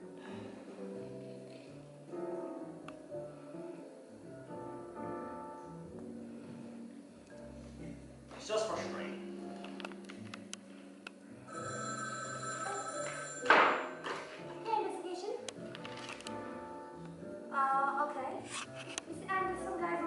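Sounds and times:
background music: 0.0s - 20.0s
telephone ringing: 11.5s - 14.4s
speech: 19.2s - 20.0s.

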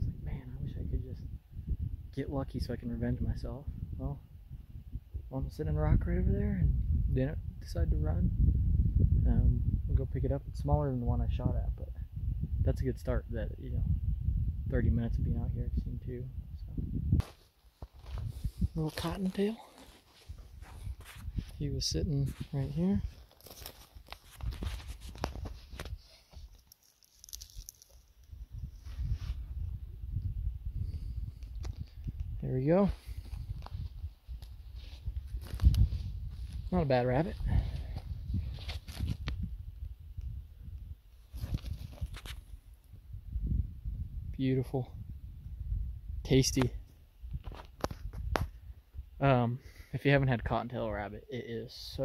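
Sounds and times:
handling rumble and scuffing: 17.1s - 28.0s, 28.6s - 29.7s, 32.8s - 39.5s, 41.2s - 42.6s
footsteps on rocky ground: 17.2s - 21.6s, 22.2s - 28.1s, 32.9s - 39.5s
twigs and brush crackling: 17.2s - 21.6s, 22.2s - 29.7s, 31.1s - 42.6s, 47.3s - 48.6s.

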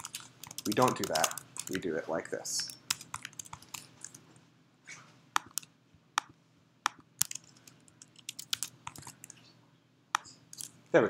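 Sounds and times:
typing on computer keyboard: 0.0s - 1.8s, 2.6s - 4.2s, 6.9s - 9.4s.

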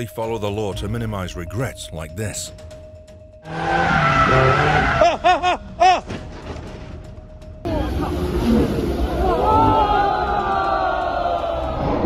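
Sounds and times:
tyres squealing on asphalt: 3.4s - 5.2s.

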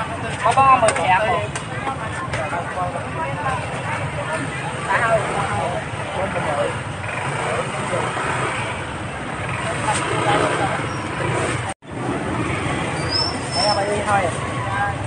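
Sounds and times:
background voices talking: 0.0s - 15.0s
motor traffic: 0.0s - 15.0s.

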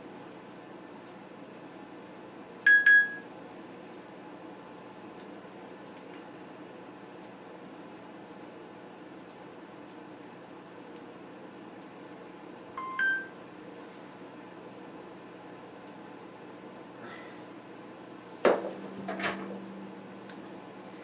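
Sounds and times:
steady background hum and hiss: 0.0s - 21.0s
rising two-tone electronic beep: 18.8s - 21.0s.

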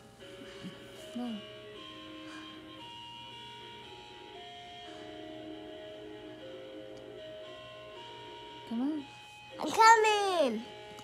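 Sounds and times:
background music of held notes: 0.0s - 11.0s.

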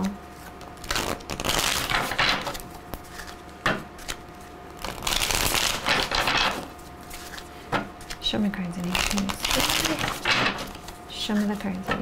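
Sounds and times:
cards being shuffled: 0.4s - 8.2s, 8.8s - 12.0s.

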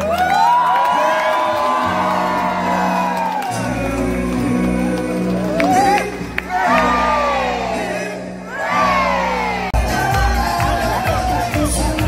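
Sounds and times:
long whooping cry: 0.0s - 3.8s
music playing: 0.0s - 12.0s.

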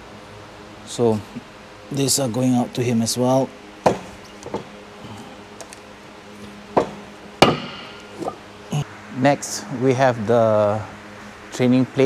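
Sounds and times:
faint knocks: 3.8s - 4.7s, 6.8s - 8.4s
weight plate knocking on wooden table: 3.9s - 4.7s, 6.8s - 8.4s.

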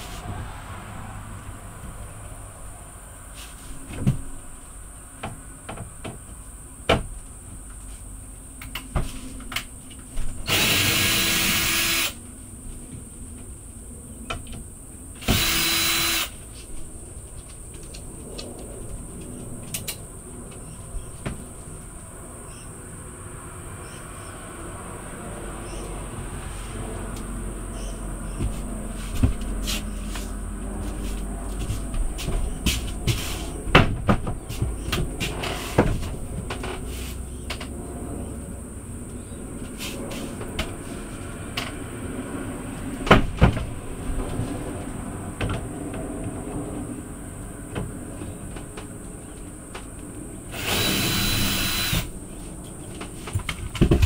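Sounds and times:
power drill bursts: 10.4s - 12.2s, 15.2s - 16.4s, 50.5s - 52.1s
knocks and clunks of cabinet: 33.7s - 34.4s.

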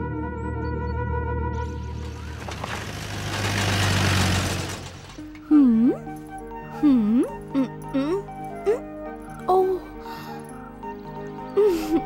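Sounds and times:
cartoon jeep engine running: 1.6s - 5.9s.

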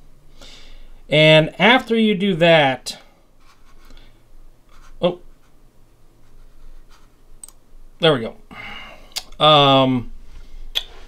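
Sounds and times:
faint low hum: 0.0s - 11.0s
faint mouse clicks: 7.4s - 7.6s.

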